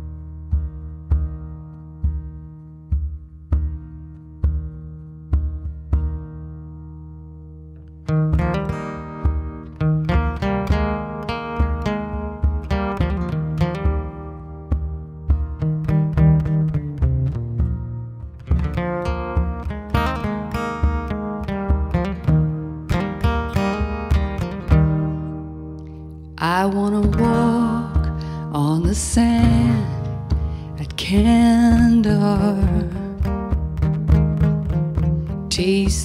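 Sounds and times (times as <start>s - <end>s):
acoustic guitars playing: 0.0s - 36.0s.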